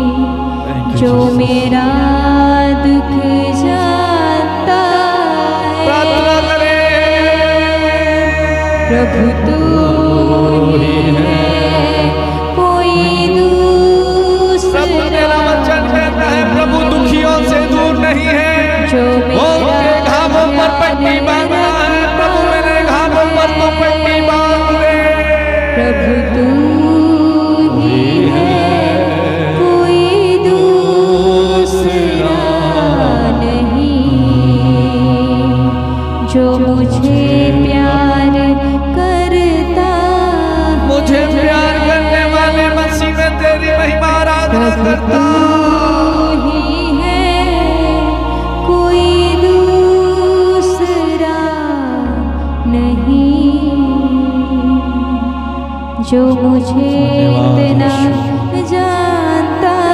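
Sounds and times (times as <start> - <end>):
sustained accompaniment chords: 0.0 - 59.9
woman and man singing worship song: 0.0 - 59.9.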